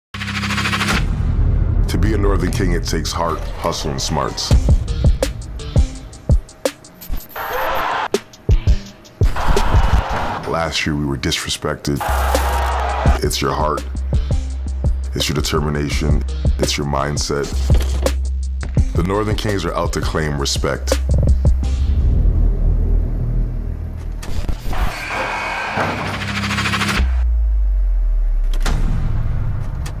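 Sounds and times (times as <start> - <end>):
low bass tone: 1.0 - 6.3, 20.9 - 24.6, 27.1 - 30.0
deep bass rumble: 1.0 - 6.4, 20.9 - 24.6
low hum: 21.4 - 25.4, 26.0 - 30.0.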